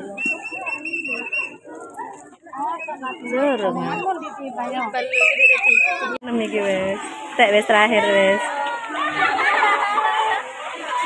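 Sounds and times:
voices: 0.0 - 11.0
high whistle: 5.0 - 6.2.

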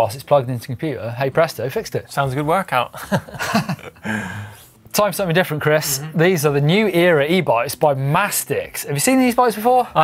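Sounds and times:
man laughing: 2.9 - 4.4.

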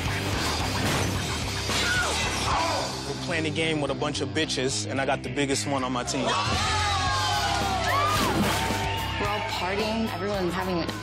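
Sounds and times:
music: 0.0 - 11.0
glass shattering and breaking: 0.4 - 2.2.

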